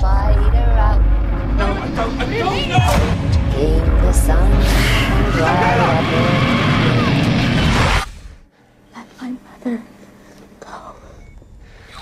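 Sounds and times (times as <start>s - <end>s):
dense low rumble: 0.0s - 8.5s.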